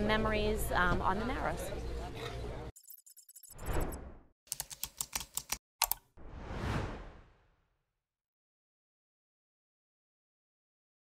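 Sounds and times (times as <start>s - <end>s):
sharp typing-like clicks: 4.5s - 6.1s
whoosh: 6.2s - 7.7s.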